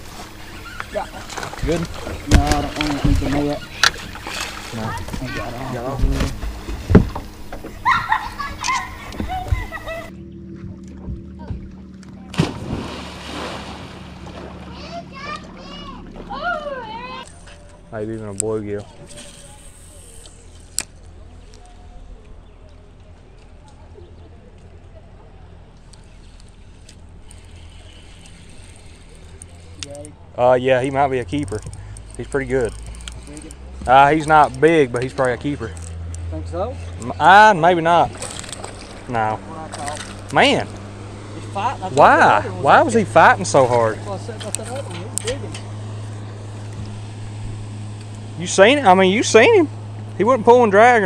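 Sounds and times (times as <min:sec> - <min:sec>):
steady low hum: 0:00.0 - 0:51.0
spinning reel cranking: 0:31.3 - 0:36.0.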